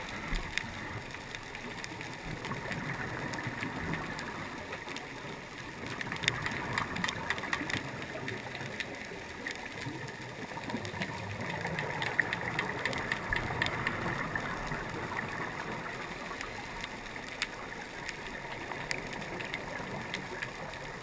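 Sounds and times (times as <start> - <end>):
sharp clicks and crackles: 0.0 - 21.0
underwater water noise: 0.0 - 21.0.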